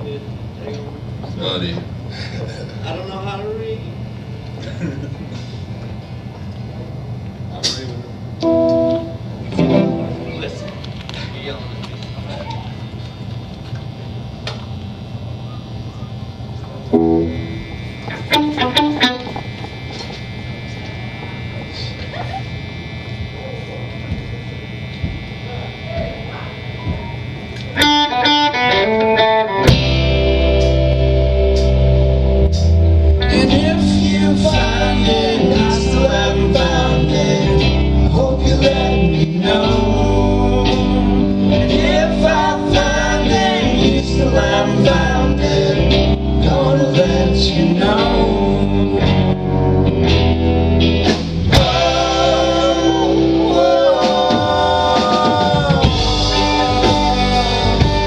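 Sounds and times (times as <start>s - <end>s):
amp hum: 0.0s - 58.0s
electric guitar notes: 7.6s - 58.0s
rock band playing live: 8.4s - 10.9s, 16.9s - 20.2s, 27.7s - 58.0s.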